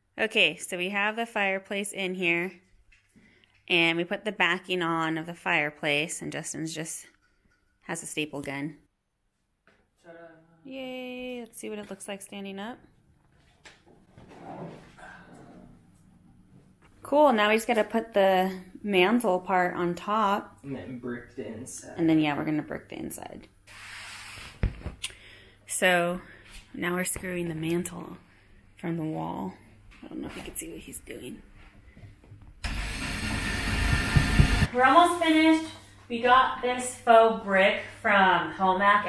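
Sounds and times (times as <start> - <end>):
electric drill driving screws: 32.6 - 34.7.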